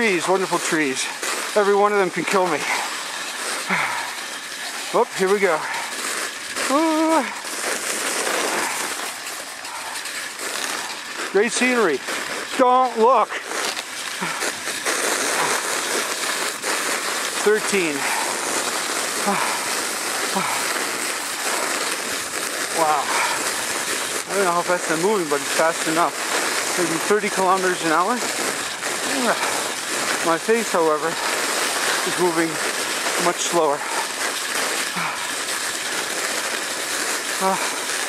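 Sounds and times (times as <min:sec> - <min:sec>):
sled runners sliding on snow: 0:00.0 - 0:38.0.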